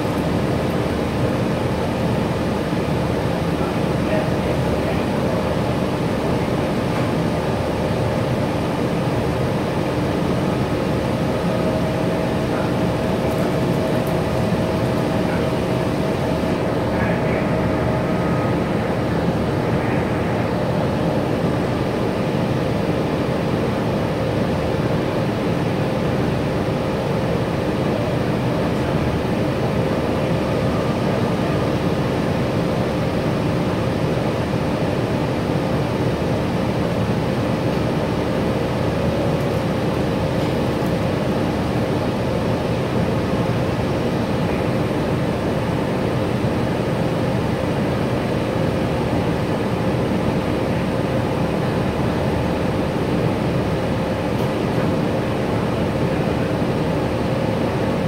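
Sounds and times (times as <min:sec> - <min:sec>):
bus diesel engine drone: 0:00.0 - 0:58.0.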